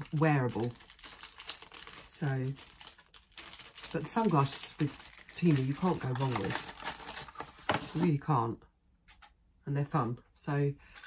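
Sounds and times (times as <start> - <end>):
packaging crinkling: 0.0 - 8.0.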